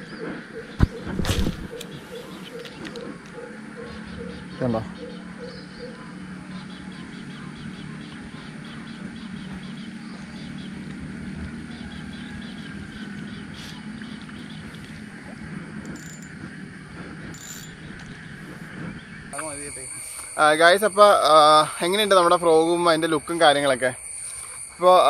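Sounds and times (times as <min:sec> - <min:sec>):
fishing reel gears ticking: 0:15.8 - 0:16.4, 0:17.3 - 0:18.1.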